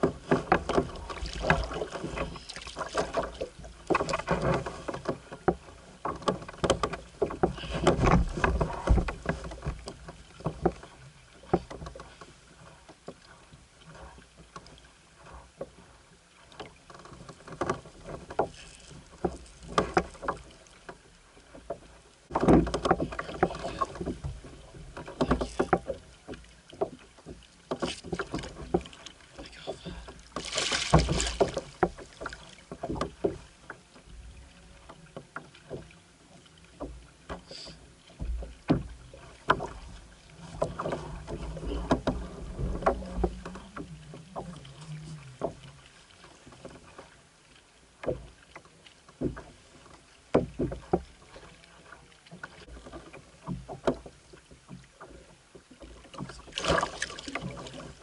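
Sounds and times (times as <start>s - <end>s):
fishing gear knocking and rustling: 0.0s - 10.9s, 21.6s - 26.0s, 30.3s - 33.4s.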